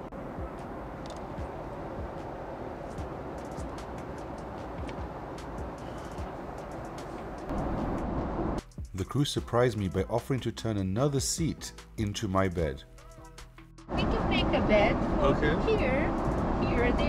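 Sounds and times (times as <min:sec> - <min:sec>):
airliner cabin noise: 0:00.0 - 0:08.6.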